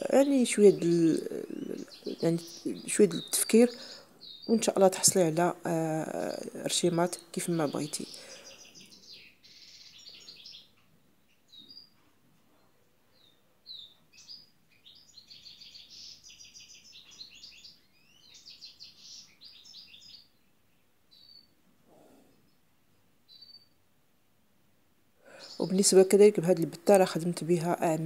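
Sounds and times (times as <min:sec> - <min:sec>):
songbird chirping and trilling: 0:00.0 - 0:21.6, 0:22.3 - 0:23.9, 0:25.3 - 0:28.0.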